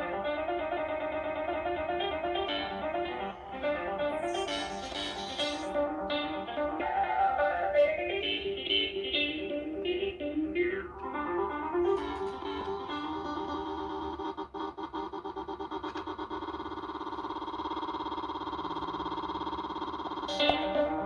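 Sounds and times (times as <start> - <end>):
rapid repeats blurring into buzzing: 0.0 - 6.7, 11.6 - 21.0
plucked melodic sampled loop: 0.0 - 17.0, 20.2 - 21.0.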